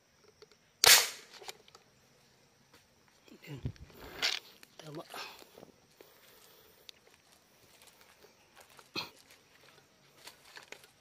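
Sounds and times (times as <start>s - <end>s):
marble gun shot: 0.8s - 1.3s.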